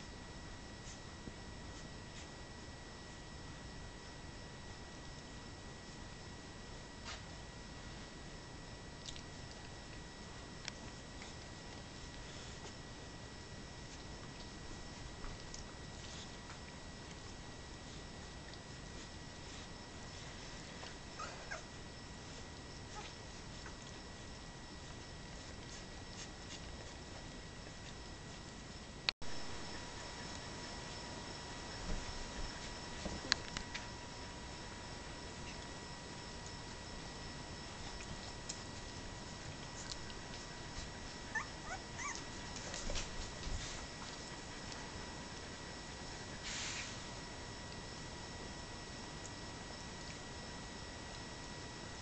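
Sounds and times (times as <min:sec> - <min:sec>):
puppies squeaking: 0:21.2 - 0:21.7, 0:41.3 - 0:42.3.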